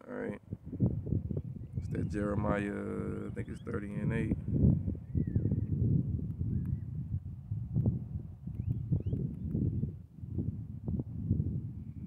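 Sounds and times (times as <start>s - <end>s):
wind buffeting microphone: 0.4s - 12.0s.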